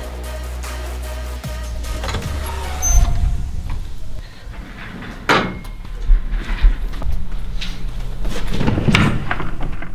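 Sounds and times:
door closing clack: 1.7 - 6.0
door opening thud: 1.7 - 6.3.

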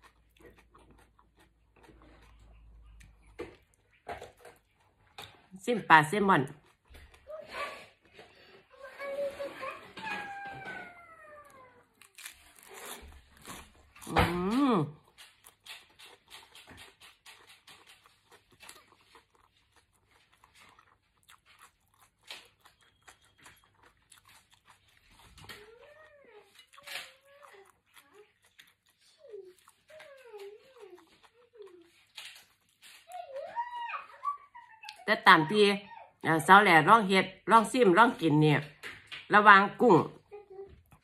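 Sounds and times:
crunching and chewing lettuce: 0.0 - 34.0, 39.9 - 41.0.

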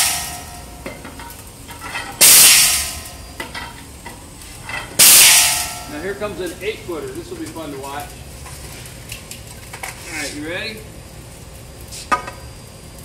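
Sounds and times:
glass breaking in crusher: 0.0 - 3.8, 4.7 - 6.1.

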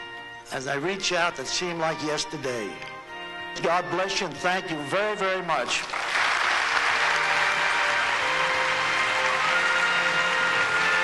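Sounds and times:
background music with held notes: 0.0 - 11.0
audience applauding: 5.7 - 11.0.

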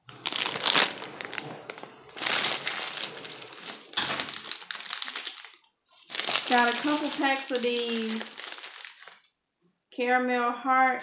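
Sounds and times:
plastic packaging crinkling: 0.0 - 9.4.

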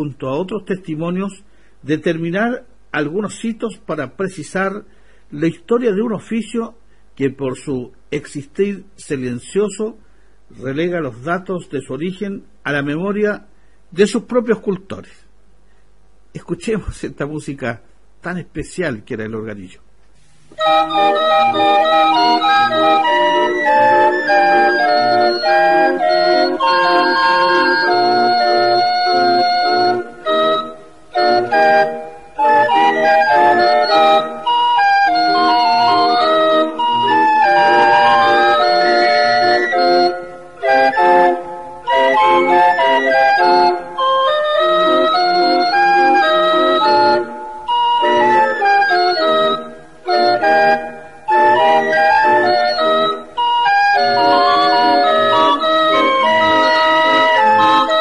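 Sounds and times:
barrel organ playing a tune: 0.0 - 4.6, 20.6 - 58.0.

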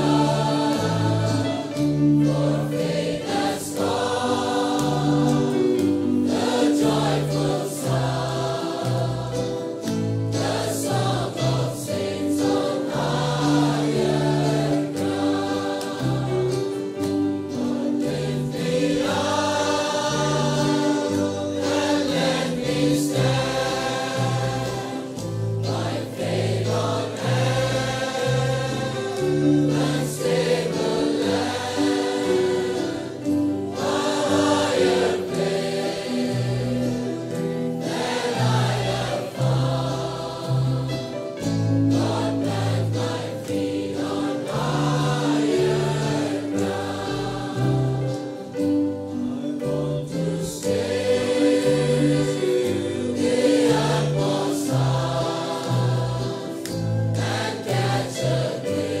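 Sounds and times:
choir singing: 0.0 - 59.0.

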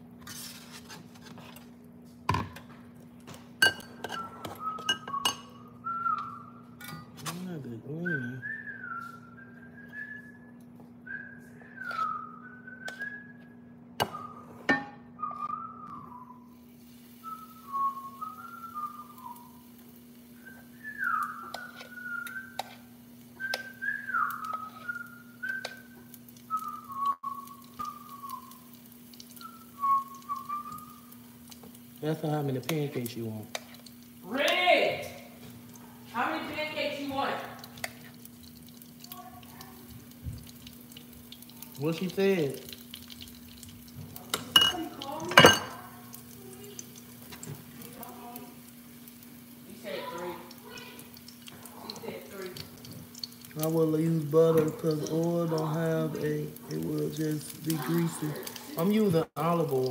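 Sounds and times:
whisk clinking against glass bowl: 3.6 - 5.6, 44.3 - 45.8
person whistling a tune: 4.1 - 6.6, 7.9 - 14.6, 15.2 - 16.5, 17.2 - 19.6, 20.4 - 22.6, 23.4 - 28.6, 29.4 - 31.1.

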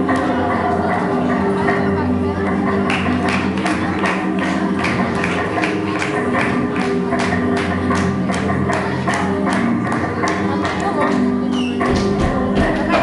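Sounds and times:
flamenco guitar music: 0.0 - 13.0.

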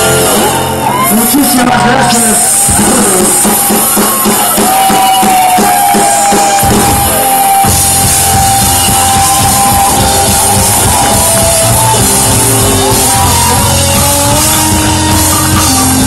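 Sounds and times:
drum kit steady beat: 0.0 - 16.0
rock band playing live: 0.0 - 16.0.

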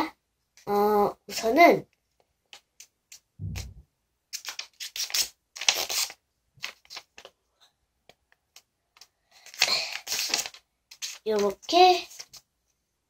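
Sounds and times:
paper rustling and crinkling: 4.4 - 7.4, 8.5 - 12.4.

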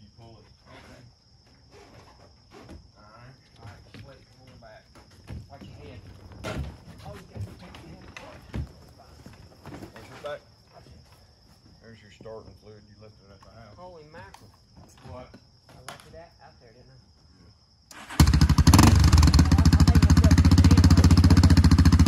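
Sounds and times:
high insect buzz: 0.0 - 3.7
knocks and thumps on trailer ramp: 3.6 - 10.3.

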